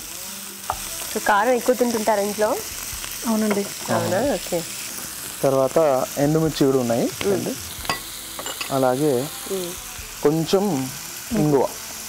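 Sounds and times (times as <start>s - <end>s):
onions frying in oil: 0.0s - 12.0s.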